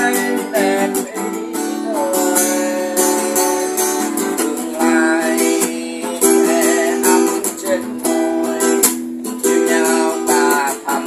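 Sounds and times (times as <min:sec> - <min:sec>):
acoustic guitar strummed and picked: 0:00.0 - 0:11.0.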